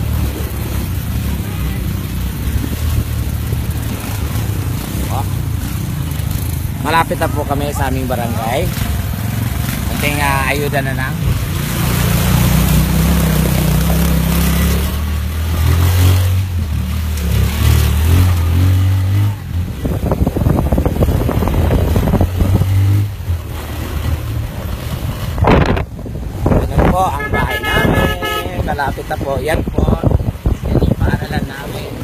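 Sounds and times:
small vehicle engine humming: 0.0 - 28.5.

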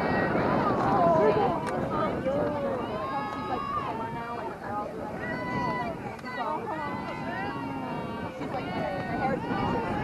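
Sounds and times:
indistinct conversation: 0.0 - 10.0.

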